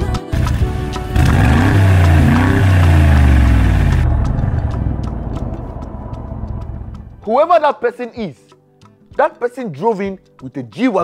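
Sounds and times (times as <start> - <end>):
car engine revving: 1.1 - 7.2.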